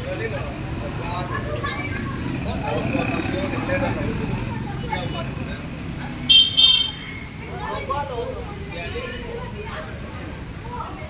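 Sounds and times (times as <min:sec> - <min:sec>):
people talking: 0:00.0 - 0:11.0
street traffic noise: 0:00.0 - 0:11.0
vehicle horn tooting: 0:06.3 - 0:07.2.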